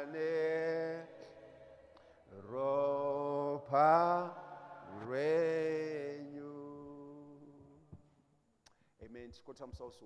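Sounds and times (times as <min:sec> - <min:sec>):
man singing long held notes: 0:00.0 - 0:01.3.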